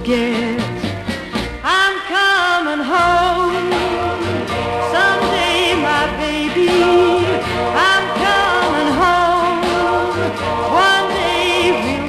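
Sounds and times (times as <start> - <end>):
pop song with vibrato singing: 0.0 - 12.0.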